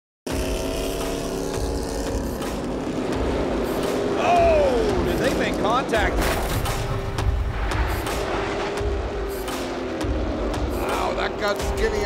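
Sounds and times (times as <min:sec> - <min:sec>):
race car engines droning: 0:00.3 - 0:12.0.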